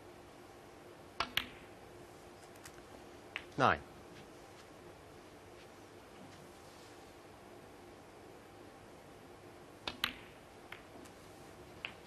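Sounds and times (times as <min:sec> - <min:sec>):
cue tip clicking cue ball: 0:09.8 - 0:11.1, 0:11.8 - 0:12.0.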